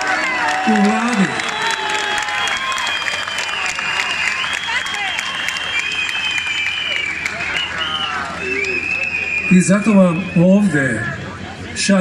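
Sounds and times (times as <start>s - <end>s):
crowd applauding and cheering: 0.0s - 10.5s
long high whistle-like tone: 1.4s - 10.8s.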